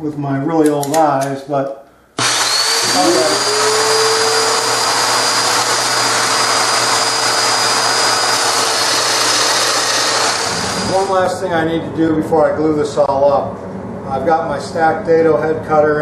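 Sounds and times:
power joiner with dust extractor: 0:02.2 - 0:11.2.

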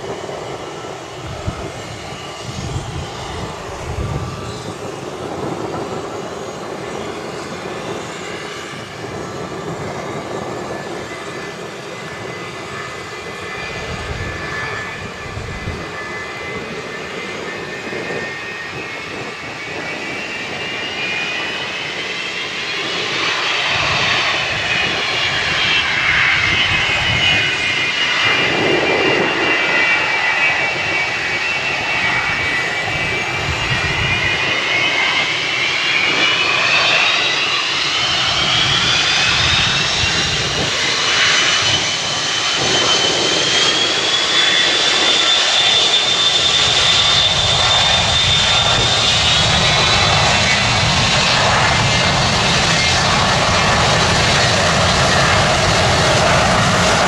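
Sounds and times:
jet engine rumble: 0:00.0 - 0:57.0
jet engine whine: 0:00.0 - 0:57.0.

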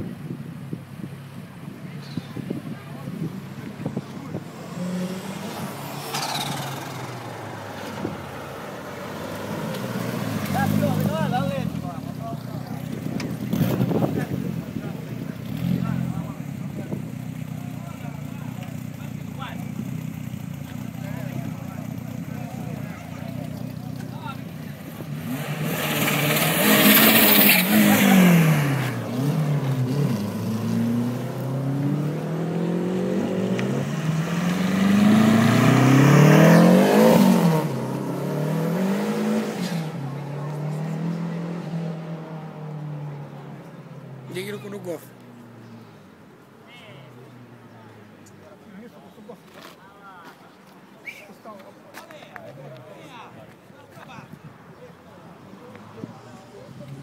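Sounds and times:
car engines revving: 0:00.0 - 0:49.4, 0:54.3 - 0:57.0.

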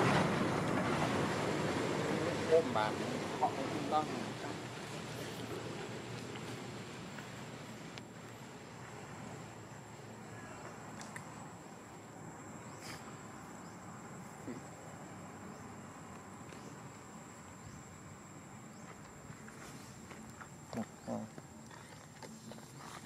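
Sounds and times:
insects droning: 0:00.0 - 0:23.0.

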